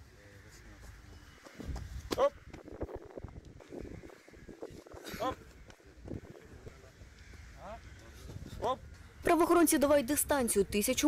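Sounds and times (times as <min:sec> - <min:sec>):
runners' footfalls on track: 0:00.8 - 0:02.7.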